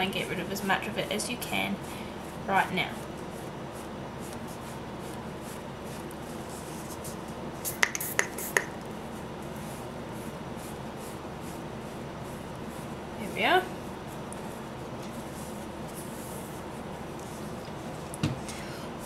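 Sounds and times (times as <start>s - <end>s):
air conditioner whirring: 0.0s - 19.0s.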